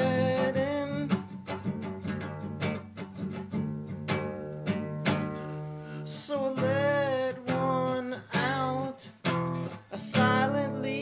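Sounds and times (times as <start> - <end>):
person singing: 0.0 - 1.3, 5.5 - 11.0
strummed acoustic guitar: 0.0 - 11.0.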